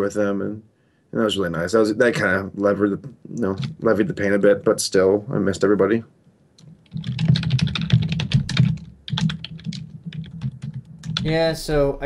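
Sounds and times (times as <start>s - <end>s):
computer keyboard typing: 6.6s - 11.3s.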